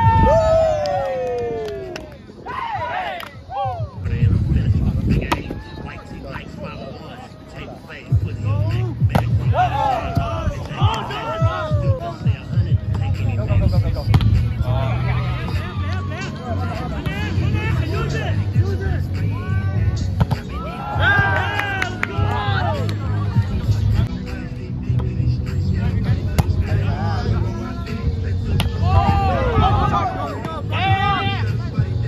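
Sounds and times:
background music: 0:00.0 - 0:32.0
faint voices: 0:01.3 - 0:32.0
background voices: 0:22.0 - 0:32.0.

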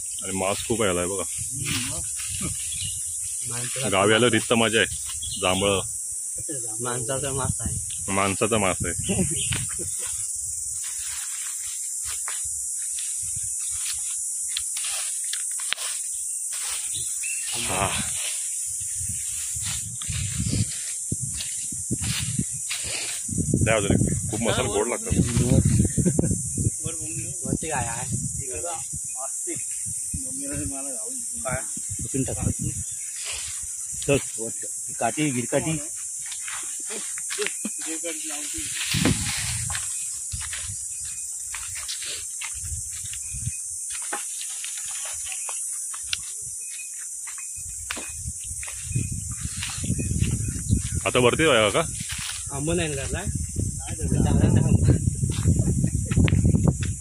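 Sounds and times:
insect chorus buzzing: 0:00.0 - 0:57.0
person's voice: 0:23.7 - 0:25.6.

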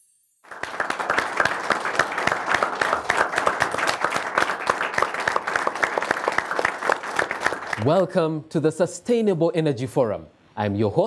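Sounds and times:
audience applauding: 0:00.4 - 0:07.9.

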